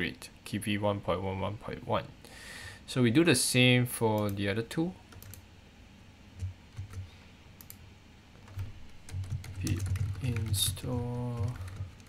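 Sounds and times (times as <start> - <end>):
keyboard and mouse clicks: 7.6 - 7.8.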